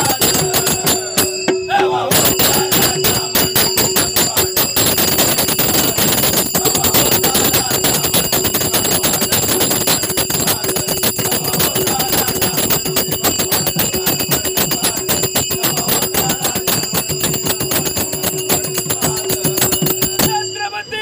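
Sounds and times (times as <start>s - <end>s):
drum beating: 0.0s - 20.5s
hand cymbals ringing: 0.0s - 21.0s.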